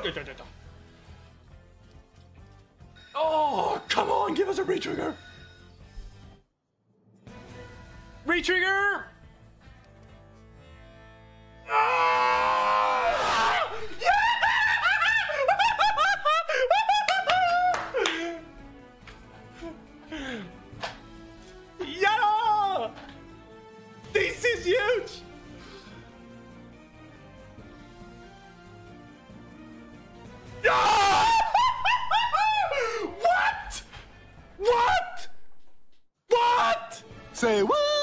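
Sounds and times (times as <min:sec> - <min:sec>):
man screaming and yelping: 0:11.7 - 0:16.8, 0:30.6 - 0:33.9, 0:34.6 - 0:35.4, 0:36.3 - 0:37.0, 0:37.6 - 0:38.0
man shrieking with laughter: 0:11.7 - 0:18.4, 0:30.6 - 0:33.9.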